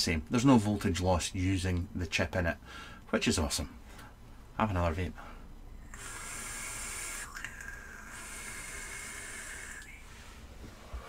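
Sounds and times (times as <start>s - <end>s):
vapour breathed out: 5.4s - 11.0s
hiss of air drawn through vape: 5.9s - 11.0s.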